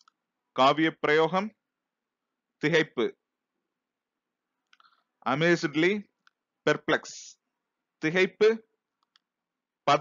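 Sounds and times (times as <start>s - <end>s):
person speaking: 0.0s - 1.7s, 2.6s - 3.2s, 4.6s - 8.8s.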